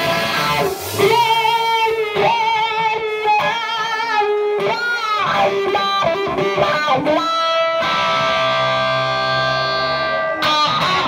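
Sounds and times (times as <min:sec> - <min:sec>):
bent-note guitar licks: 0:00.0 - 0:11.0
electric guitar chord ringing: 0:00.0 - 0:11.0.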